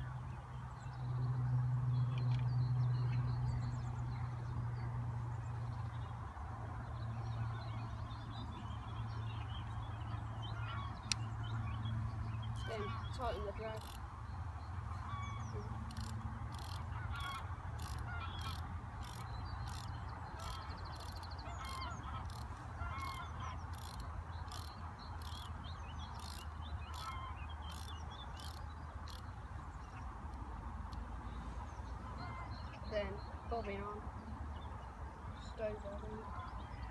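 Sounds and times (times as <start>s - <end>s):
fishing reel clicking: 13.8s - 14.0s, 15.8s - 29.3s.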